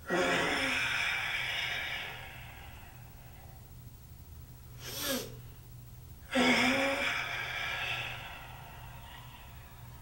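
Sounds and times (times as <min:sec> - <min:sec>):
forceful hissing exhalation: 0:04.8 - 0:05.4.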